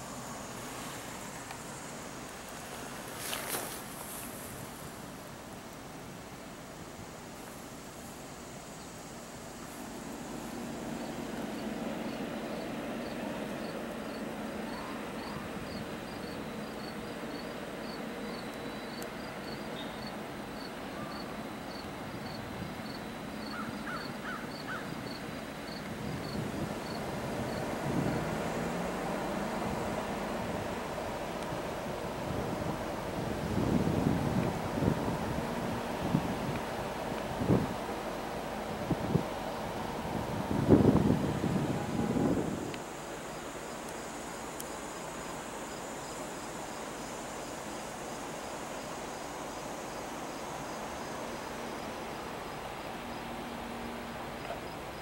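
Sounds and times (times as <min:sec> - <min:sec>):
insects chirping: 0:00.0 - 0:55.0
wind buffeting microphone: 0:25.7 - 0:42.8.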